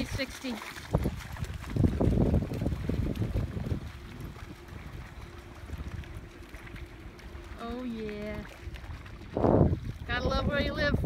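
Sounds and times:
faint steady hum: 0:00.0 - 0:11.0
wind buffeting microphone: 0:00.0 - 0:11.0.

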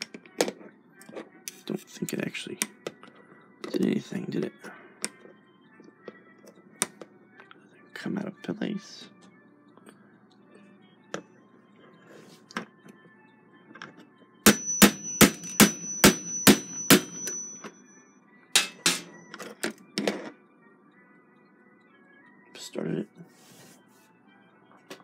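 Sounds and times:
high metallic ring: 0:14.5 - 0:19.3.

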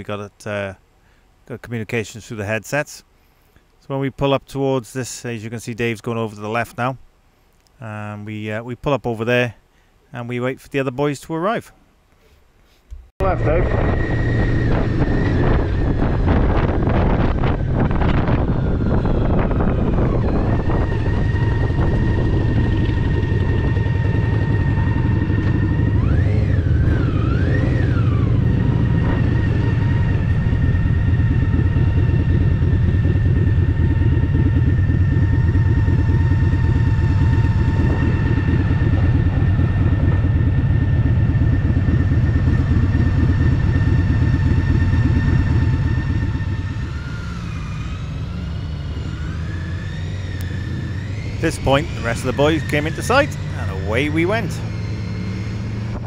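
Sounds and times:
motorcycle engine rumbling: 0:12.9 - 0:56.0.

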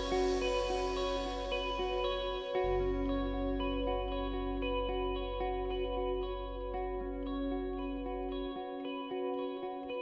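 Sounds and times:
picked guitar arpeggios: 0:00.0 - 0:10.0
steady held low note: 0:00.0 - 0:10.0.

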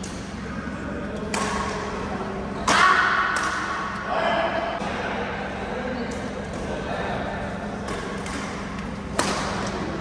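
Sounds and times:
steady background hum: 0:00.0 - 0:10.0
racket hitting shuttlecock: 0:01.3 - 0:01.8, 0:02.6 - 0:04.0, 0:07.8 - 0:09.9.

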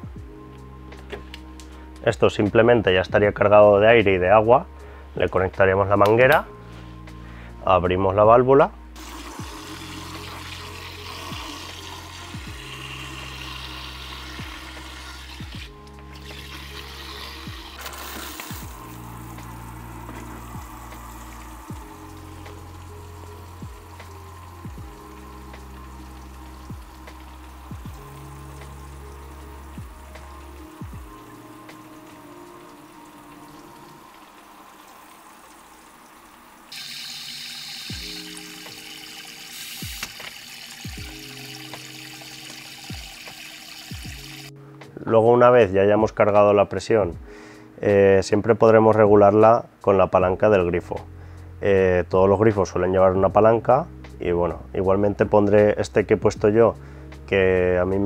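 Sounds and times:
background music with steady beat: 0:00.0 - 0:35.1, 0:36.7 - 0:58.0
water spraying into plastic bucket: 0:09.0 - 0:44.5.

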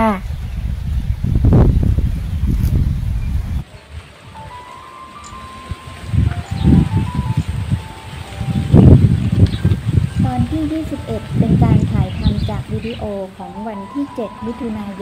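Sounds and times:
wind buffeting microphone: 0:00.0 - 0:15.0
soft sustained music notes: 0:03.7 - 0:15.0.

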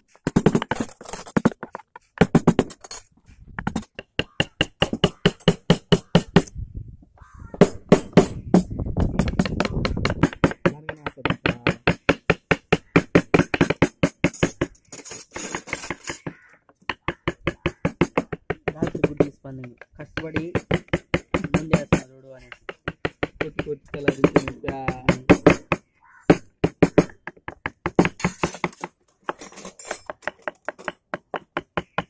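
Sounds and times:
mallets tapping chisels into wood: 0:03.6 - 0:06.5, 0:09.2 - 0:32.0.

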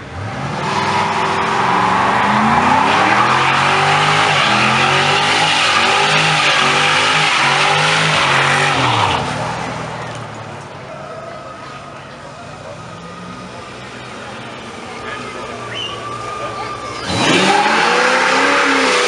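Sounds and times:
car engine revving high: 0:00.0 - 0:10.1, 0:15.5 - 0:19.0
tyre screeching on asphalt: 0:00.1 - 0:10.2, 0:14.8 - 0:19.0.

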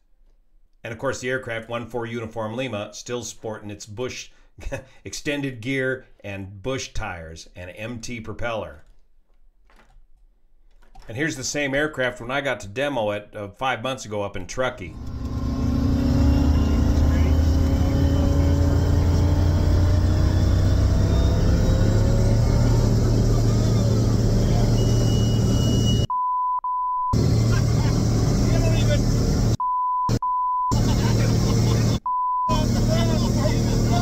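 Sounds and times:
aircraft engine at full power: 0:15.0 - 0:26.0, 0:27.2 - 0:29.6, 0:32.6 - 0:34.0
censor bleeps: 0:24.4 - 0:27.2, 0:29.6 - 0:30.8, 0:32.0 - 0:32.6.

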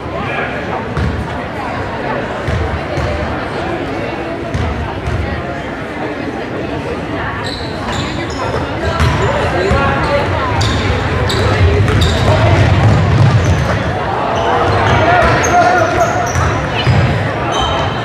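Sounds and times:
spectators' voices: 0:00.0 - 0:18.0
sneakers squeaking: 0:01.0 - 0:01.3, 0:02.4 - 0:03.4, 0:07.4 - 0:18.0
basketball bouncing: 0:08.8 - 0:13.8, 0:16.3 - 0:17.2.

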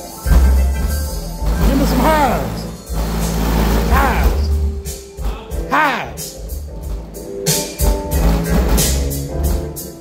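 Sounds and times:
song on car audio with deep bass: 0:00.0 - 0:10.0.

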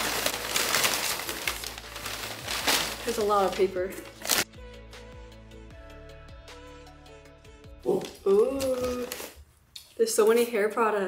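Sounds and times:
packing paper rustling: 0:00.0 - 0:04.5, 0:07.9 - 0:09.4
background music with steady beat: 0:01.8 - 0:08.5.

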